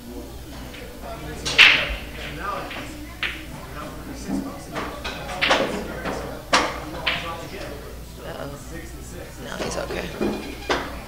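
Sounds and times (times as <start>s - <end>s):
background voices: 0.0s - 11.0s
pool balls knocking together: 0.3s - 8.2s, 8.8s - 11.0s
pool cue striking ball: 0.3s - 11.0s.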